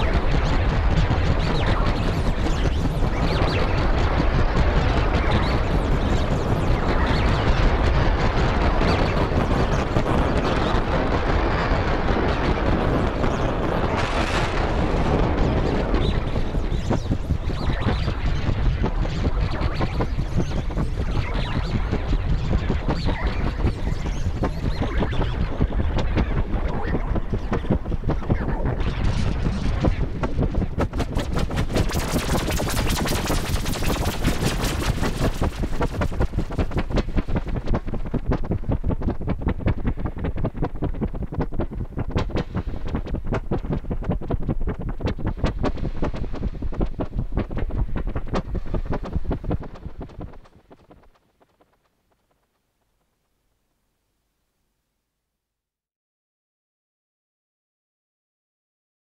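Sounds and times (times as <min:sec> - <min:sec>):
pulsing noisy synthesizer: 0:00.0 - 0:51.6.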